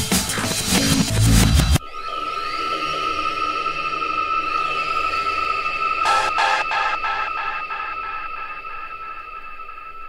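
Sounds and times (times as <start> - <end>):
held high synth tone: 6.1 - 9.3.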